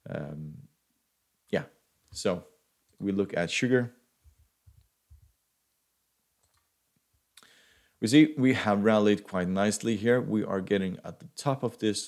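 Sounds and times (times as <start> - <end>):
faint click: 6.4 - 6.7.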